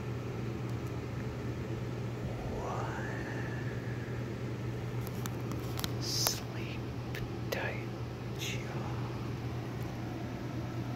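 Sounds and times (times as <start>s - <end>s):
steady low hum: 0.0s - 10.9s
person whispering slowly: 2.2s - 4.3s, 6.0s - 6.8s, 7.5s - 9.1s.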